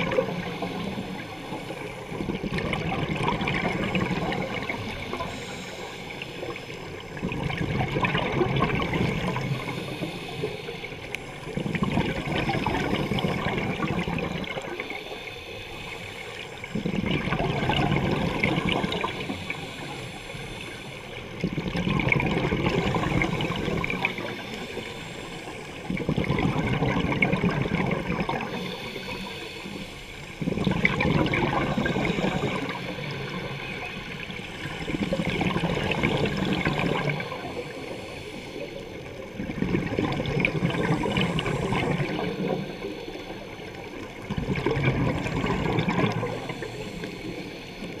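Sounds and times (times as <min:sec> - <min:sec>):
exhaled bubbles rushing: 0:00.0 - 0:05.6, 0:06.4 - 0:10.4, 0:11.4 - 0:15.0, 0:16.6 - 0:20.0, 0:21.2 - 0:24.9, 0:25.8 - 0:29.8, 0:30.4 - 0:38.2, 0:38.9 - 0:48.0
diver breathing through regulator: 0:03.7 - 0:07.0, 0:08.8 - 0:17.1, 0:18.0 - 0:21.3, 0:22.5 - 0:26.8, 0:28.2 - 0:39.3, 0:40.6 - 0:44.0, 0:45.2 - 0:48.0.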